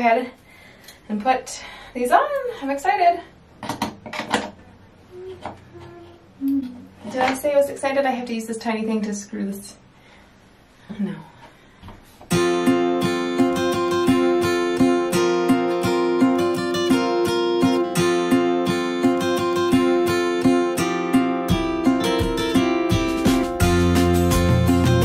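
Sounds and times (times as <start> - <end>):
acoustic guitar strumming and picking: 12.3 - 25.0.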